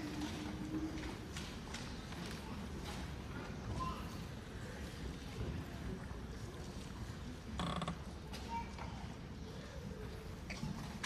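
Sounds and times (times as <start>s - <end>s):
rustles and creaks: 0.0s - 11.0s.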